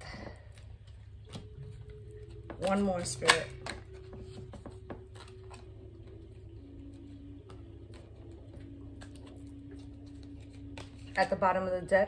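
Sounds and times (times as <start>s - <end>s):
steady low hum: 0.0s - 12.0s
cards being shuffled: 0.2s - 11.5s.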